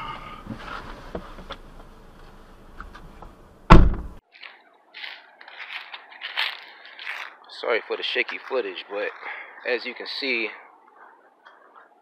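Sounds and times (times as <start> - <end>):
car door shutting: 3.7 - 4.2
rustling and scuffing: 4.2 - 9.2.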